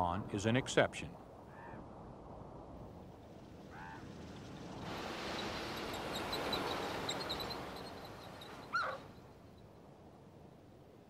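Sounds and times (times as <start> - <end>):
elk calling: 8.7 - 9.0.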